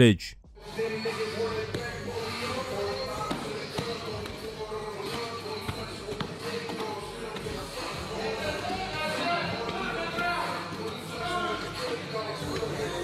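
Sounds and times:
voices: 0:00.0 - 0:00.4
music: 0:00.4 - 0:13.0.

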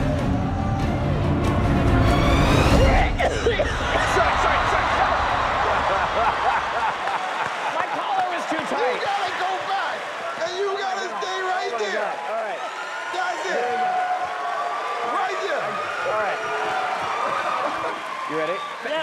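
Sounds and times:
background music: 0:00.0 - 0:06.6
audience laughing loudly: 0:03.0 - 0:08.9, 0:17.1 - 0:18.2
people clapping: 0:03.8 - 0:19.0.

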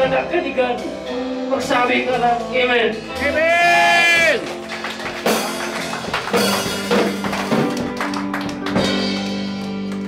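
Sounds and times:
electric guitar chords: 0:00.0 - 0:10.0
drum and cymbal hits: 0:02.0 - 0:08.0.

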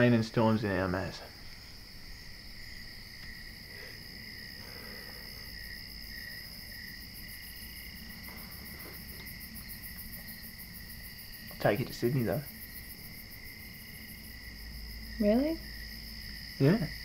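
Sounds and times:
insects chirping: 0:00.0 - 0:17.0.

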